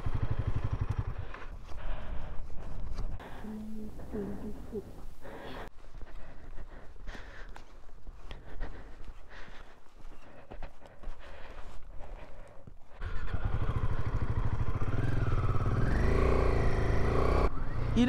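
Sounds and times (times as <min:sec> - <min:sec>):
motorcycle engine revving: 0:00.0 - 0:02.2, 0:12.9 - 0:18.0.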